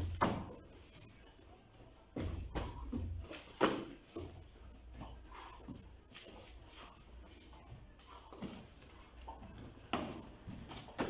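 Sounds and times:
kicks thudding on thigh: 0:00.0 - 0:00.7, 0:02.2 - 0:05.2, 0:09.4 - 0:11.0
feet shuffling on mat: 0:00.0 - 0:11.0.

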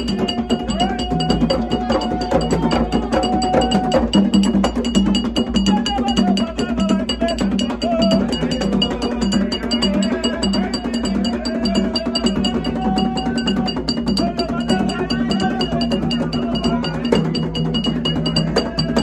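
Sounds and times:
group of voices singing: 0:00.0 - 0:19.0
hand drumming: 0:00.0 - 0:19.0
ringing metal bell: 0:00.0 - 0:19.0.

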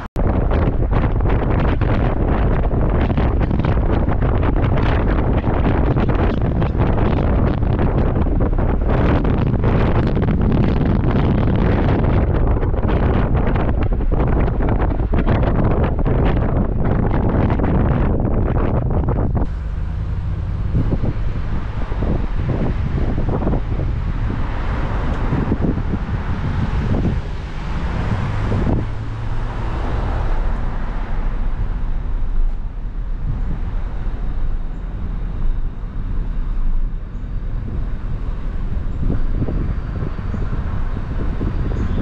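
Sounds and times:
road traffic passing: 0:00.0 - 0:42.0
wind rumbling on microphone: 0:00.0 - 0:42.0.

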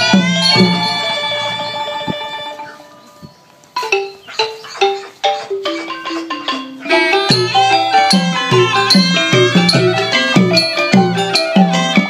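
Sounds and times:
xylophone-like notes: 0:00.0 - 0:12.0
drum stroke: 0:05.5 - 0:12.0.

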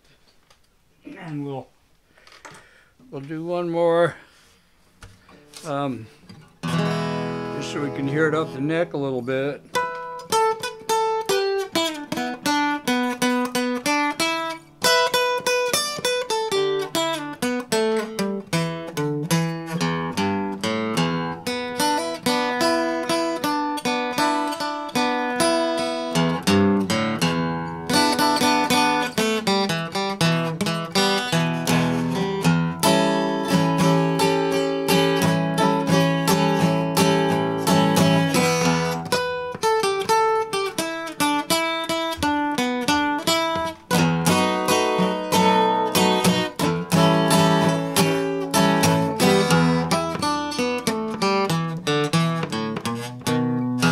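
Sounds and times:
acoustic guitar flat-picked: 0:03.4 - 0:53.9.

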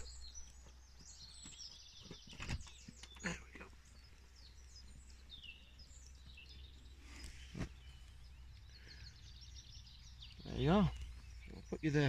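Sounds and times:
songbirds chirping: 0:00.0 - 0:12.0.

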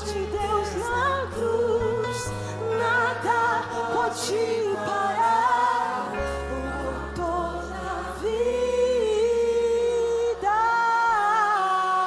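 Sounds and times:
woman singing with vibrato: 0:00.0 - 0:07.6.

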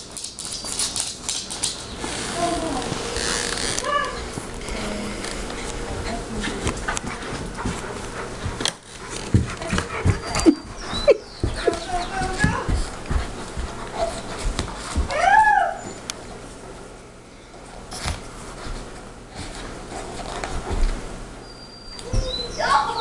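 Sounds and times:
dog jaws snapping and chomping: 0:00.1 - 0:01.9
dogs yelping: 0:09.6 - 0:12.6, 0:15.1 - 0:16.1, 0:21.4 - 0:23.0
dog whining: 0:10.0 - 0:12.2, 0:15.1 - 0:16.1, 0:21.4 - 0:23.0.

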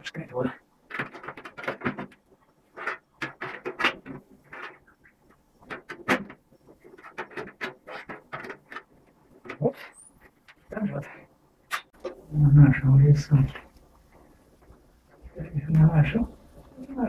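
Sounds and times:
metal sheet clicking and crinkling: 0:00.8 - 0:10.8.

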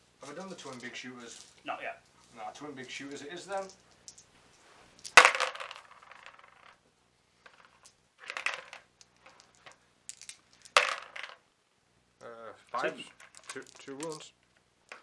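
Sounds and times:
dice clattering in plastic tub: 0:05.0 - 0:06.8, 0:07.4 - 0:11.4, 0:12.8 - 0:14.3.

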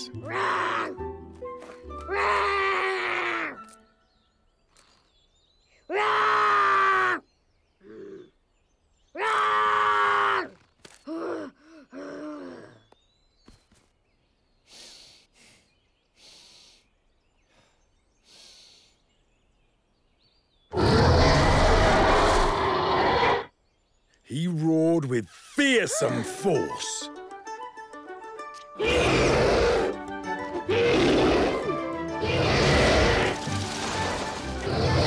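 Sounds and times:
cartoon dragon roaring: 0:20.7 - 0:23.5, 0:28.8 - 0:33.4, 0:34.1 - 0:35.0.

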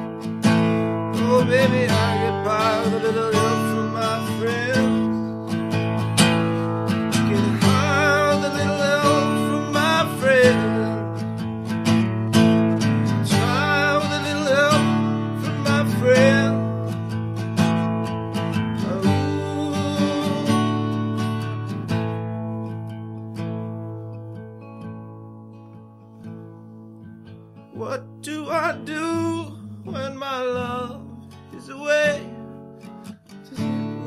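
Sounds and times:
man singing: 0:00.0 - 0:21.4, 0:27.7 - 0:32.5, 0:33.5 - 0:34.0
acoustic guitar strumming: 0:00.0 - 0:34.0.

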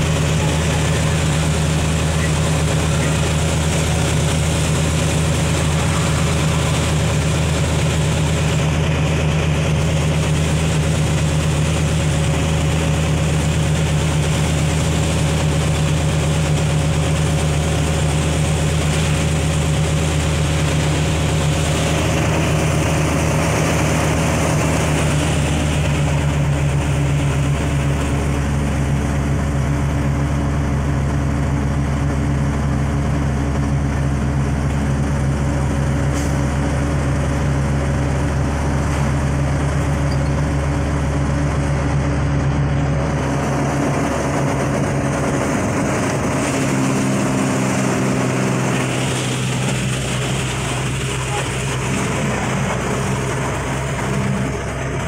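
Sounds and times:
diesel bus engine running: 0:00.0 - 0:55.0.

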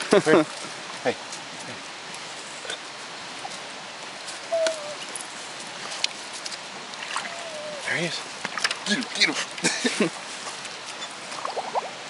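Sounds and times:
short squeak: 0:10.9 - 0:11.2.

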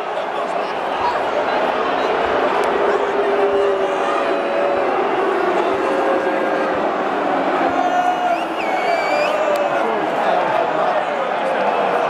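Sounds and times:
din of many voices: 0:00.0 - 0:12.0
stadium crowd chanting: 0:00.0 - 0:12.0.

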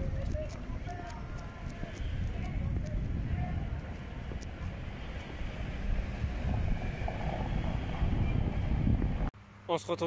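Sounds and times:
wind buffeting microphone: 0:00.0 - 0:09.3
outdoor street ambience: 0:00.0 - 0:10.0.

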